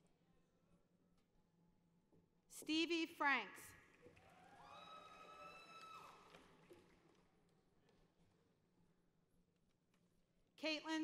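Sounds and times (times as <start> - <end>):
distant high-pitched cheer: 4.3 - 6.4.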